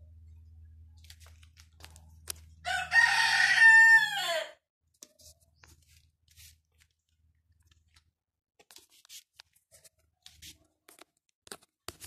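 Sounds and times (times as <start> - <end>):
rooster crowing: 2.6 - 4.6.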